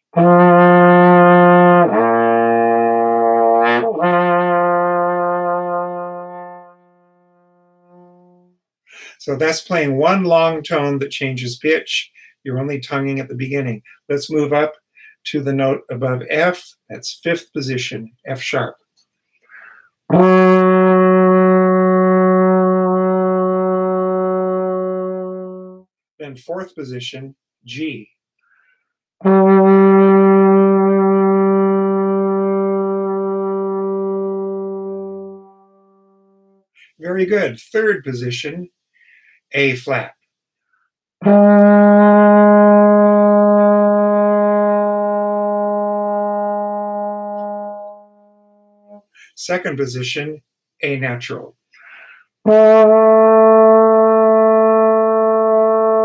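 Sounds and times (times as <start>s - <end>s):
trombone long tone: 0.0s - 8.6s, 20.1s - 25.8s, 29.2s - 36.5s, 41.2s - 49.0s, 52.4s - 56.0s
trombone lip slur: 41.2s - 48.1s, 51.8s - 56.0s.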